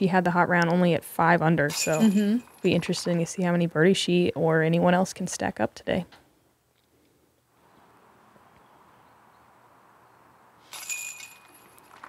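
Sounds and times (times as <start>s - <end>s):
faint outdoor background: 0.0s - 12.0s
metal chains jingling: 1.7s - 2.9s, 10.7s - 12.0s.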